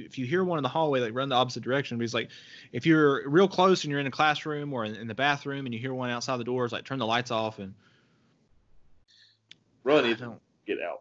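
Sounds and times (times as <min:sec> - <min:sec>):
man speaking: 0:00.0 - 0:07.8, 0:09.9 - 0:11.0.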